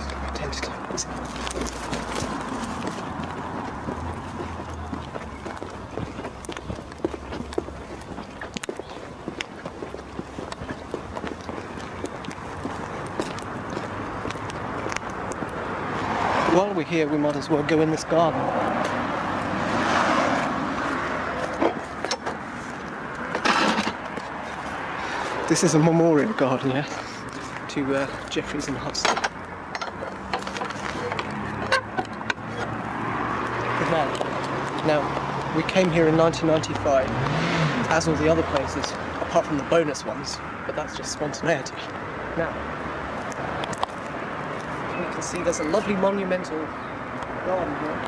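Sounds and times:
outdoor background noise: 0:00.0 - 0:48.0
passing car road noise: 0:00.0 - 0:48.0.

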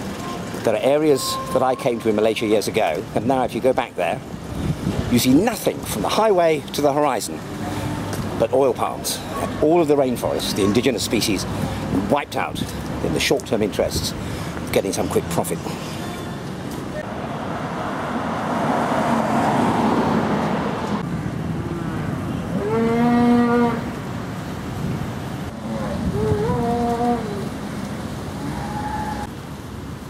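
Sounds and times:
cattle mooing: 0:22.5 - 0:23.9, 0:25.5 - 0:27.5.

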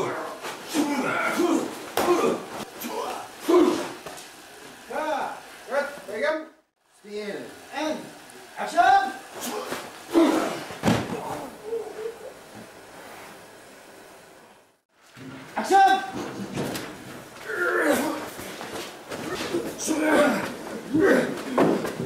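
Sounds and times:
bodies thumping and slamming: 0:09.6 - 0:11.5.

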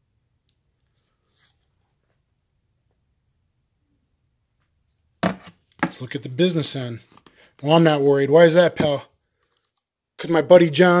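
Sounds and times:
person speaking: 0:05.2 - 0:09.1.

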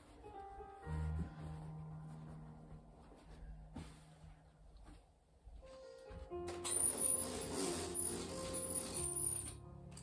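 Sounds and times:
background music: 0:00.0 - 0:10.0
roller blind mechanism running: 0:06.6 - 0:09.6.

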